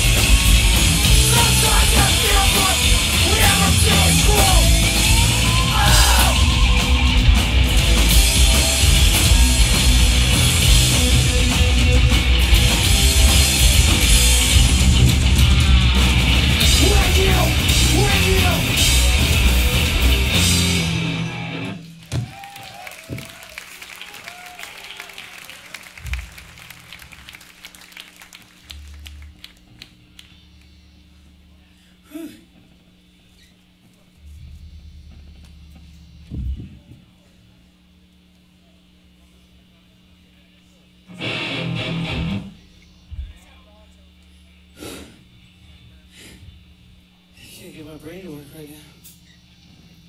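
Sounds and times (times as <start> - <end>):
stray guitar and bass noises: 0.0 - 22.2, 41.1 - 43.4
amplifier hum: 0.0 - 22.4, 25.0 - 50.0
loud punk band playing: 0.0 - 22.5, 41.1 - 42.6
crowd clapping: 21.8 - 30.8.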